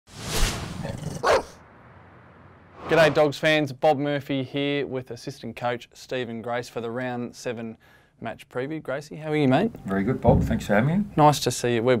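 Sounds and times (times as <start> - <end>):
loud dog bark: 1.2 - 1.6
noisy swell: 1.6 - 3.4.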